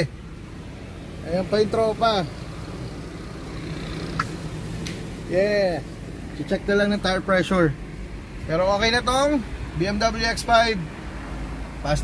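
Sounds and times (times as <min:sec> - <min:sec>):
car engine idling: 0:00.0 - 0:12.0
man speaking: 0:01.2 - 0:02.4, 0:05.2 - 0:07.8, 0:08.4 - 0:10.9.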